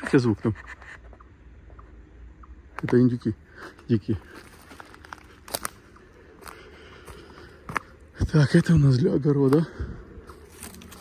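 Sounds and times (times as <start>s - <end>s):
footsteps on dry leaves: 3.6s - 11.0s
twigs snapping: 4.4s - 5.8s, 10.3s - 11.0s.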